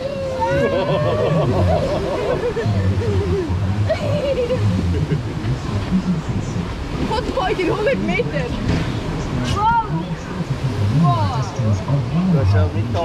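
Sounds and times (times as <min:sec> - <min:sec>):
rushing river rapids: 0:00.0 - 0:13.0.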